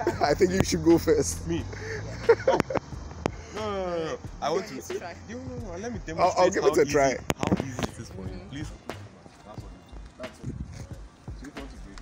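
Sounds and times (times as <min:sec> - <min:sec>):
surrounding conversation: 0:00.0 - 0:12.0.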